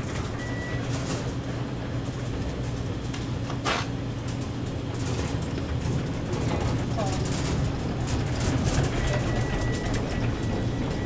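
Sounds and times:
freezer wheeled across floor: 0.0 - 11.0
rattles and clicks: 0.0 - 11.0.

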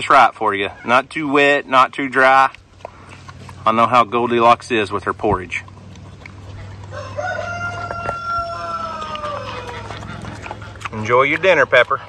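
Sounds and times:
rooster crowing: 6.9 - 10.1.

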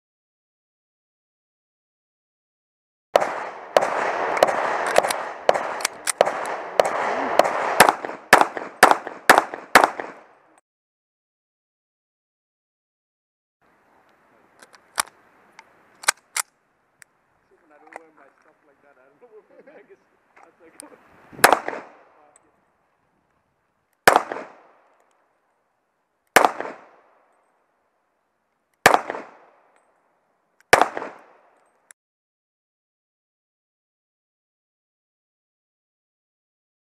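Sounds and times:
pistol shots echoing: 3.2 - 10.4, 21.4 - 22.3, 24.0 - 24.8, 26.4 - 27.2, 28.8 - 29.7, 30.7 - 31.6.

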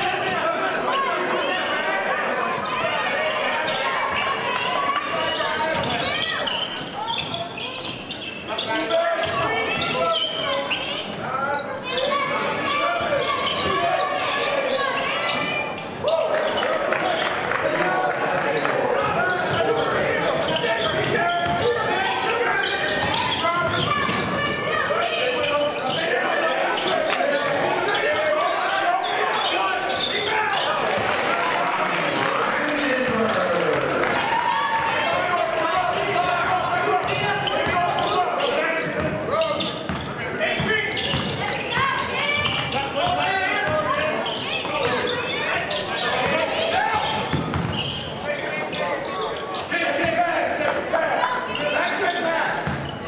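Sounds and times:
voices of players and spectators: 0.0 - 53.0.

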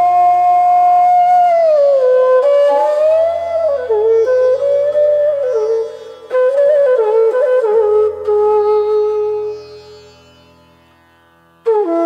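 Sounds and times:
bamboo flute long note: 0.0 - 9.9.

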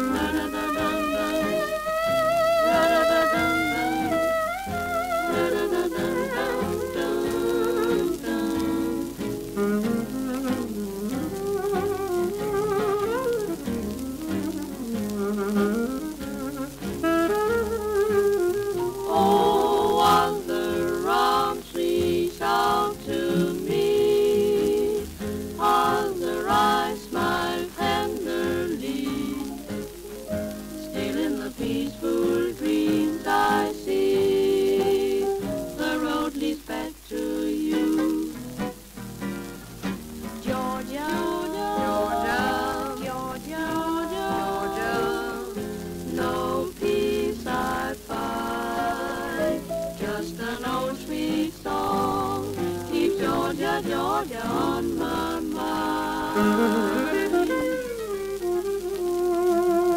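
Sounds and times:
record surface crackle: 0.0 - 59.9
swing band playing slow ballad: 0.0 - 59.9.

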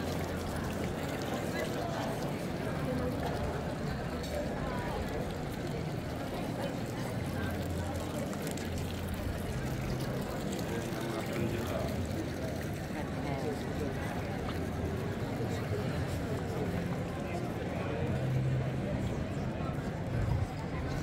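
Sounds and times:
chatter of passers-by: 0.0 - 21.0.

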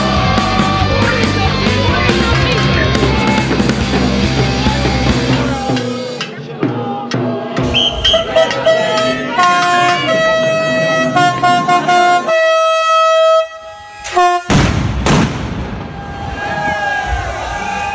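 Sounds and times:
horn long held notes: 7.6 - 14.6.

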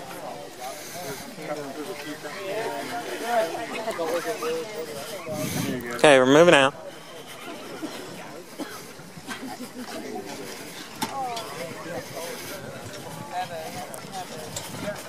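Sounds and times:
distant voices talking and calling: 0.0 - 15.0.

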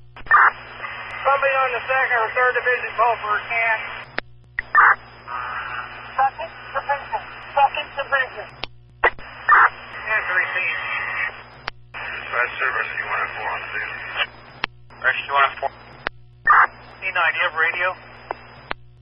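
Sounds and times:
steady low hum: 0.0 - 19.0
radio voice transmissions: 0.2 - 18.7
radio unkey click: 18.2 - 18.8.

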